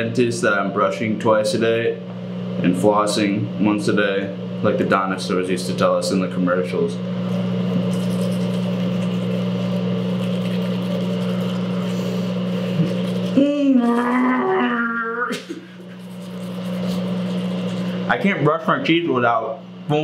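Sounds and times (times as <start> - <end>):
exhaust fan humming: 0.0 - 20.0
toothbrush scrubbing: 7.3 - 14.1, 15.6 - 18.1
man humming with toothbrush: 7.3 - 18.1.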